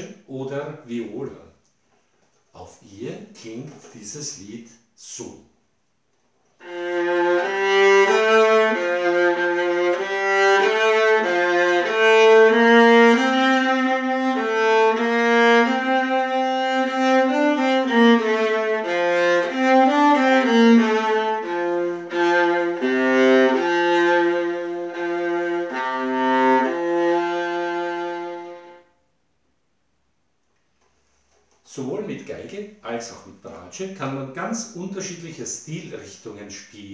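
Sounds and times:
solo viola melody: 0:06.6 - 0:29.1.

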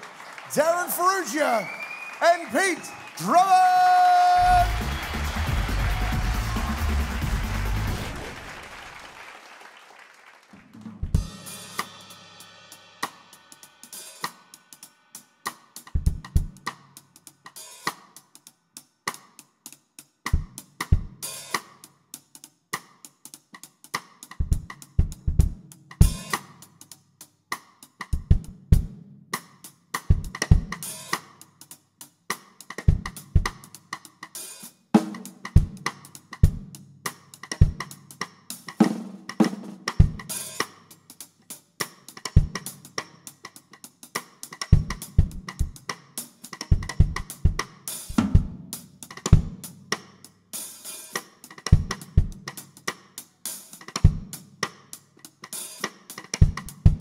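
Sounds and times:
hi-hat and cymbal hits: 0:11.2 - 0:18.5, 0:25.7 - 0:28.0, 0:30.0 - 0:36.3, 0:40.2 - 0:54.8.

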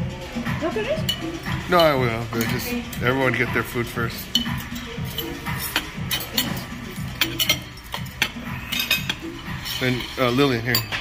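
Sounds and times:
utensils clinking on plates: 0:01.0 - 0:11.0.

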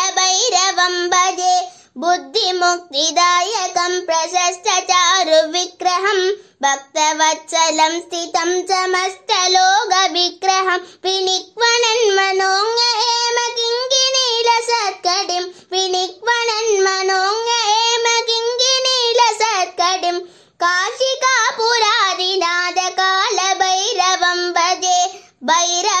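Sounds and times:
boy singing a hymn: 0:00.0 - 0:26.0.

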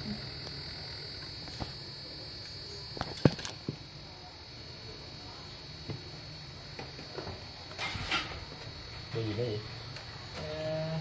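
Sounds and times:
thin high-pitched whine: 0:00.0 - 0:11.0.

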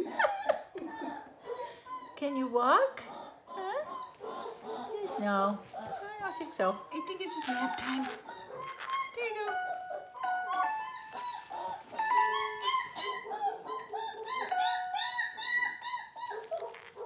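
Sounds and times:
puppy whining and squeaking: 0:03.1 - 0:17.0
simple tune of held notes: 0:09.4 - 0:12.6.

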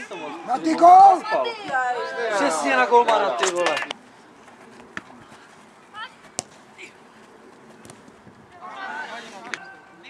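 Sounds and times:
football being kicked: 0:06.3 - 0:06.6.

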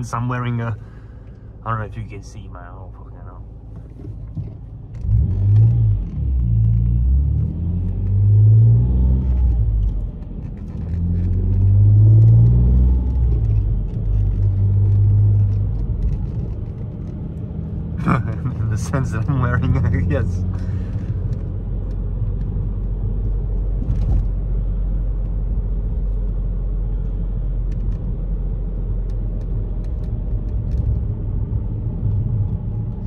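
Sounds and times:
car engine accelerating: 0:03.2 - 0:33.0.

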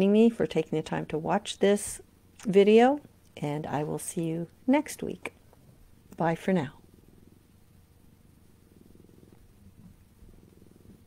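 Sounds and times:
cat purring: 0:03.6 - 0:11.0.

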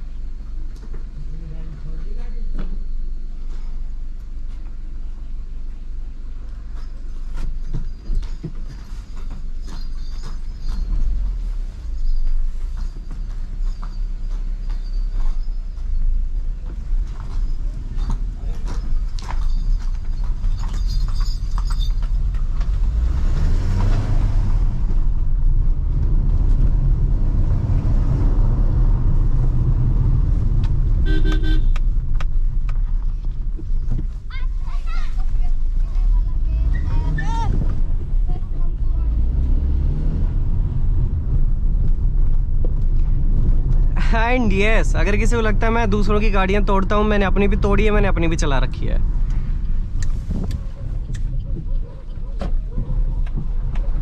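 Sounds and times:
car engine and road rumble: 0:00.0 - 0:54.0
car horn tooting: 0:31.0 - 0:31.8.

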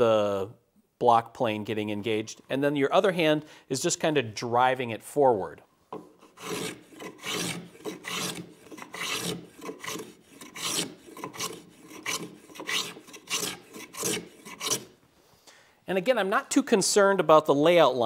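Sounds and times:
plane shaving wood: 0:06.2 - 0:14.9.

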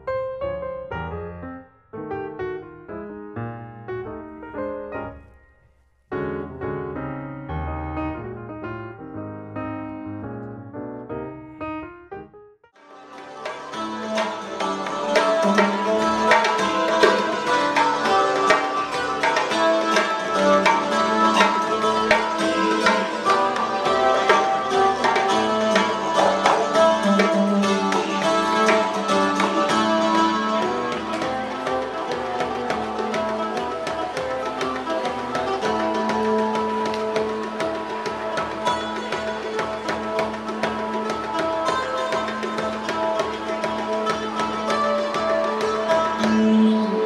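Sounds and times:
hand drum beaten quickly: 0:13.4 - 0:46.5.

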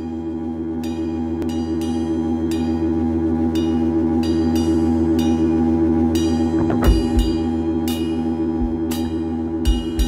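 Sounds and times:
low sustained droning chord: 0:00.0 - 0:10.0
ringing guitar strokes: 0:00.6 - 0:10.0.

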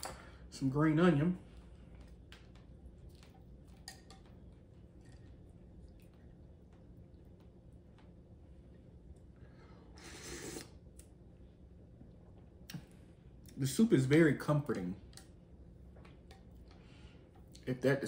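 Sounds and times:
slurp of broth: 0:10.0 - 0:10.8.

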